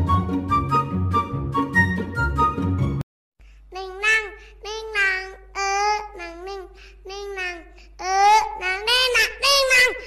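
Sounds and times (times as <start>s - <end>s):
child singing: 3.8s - 10.0s.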